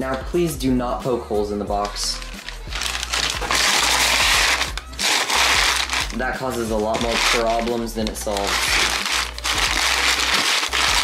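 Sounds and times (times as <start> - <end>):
packing paper crumpling: 1.8 - 11.0.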